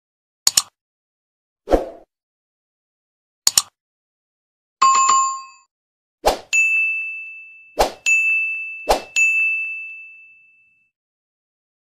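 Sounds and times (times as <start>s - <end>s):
sharp clicks: 0.5s - 0.8s, 3.5s - 3.8s
notification bell ding: 4.8s - 5.7s, 6.5s - 10.9s
short chime: 6.6s - 10.9s.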